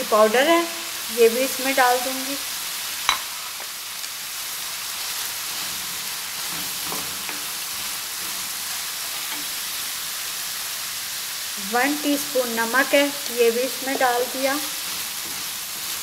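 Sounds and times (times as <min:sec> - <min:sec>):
meat sizzling in a pan: 0:00.0 - 0:16.0.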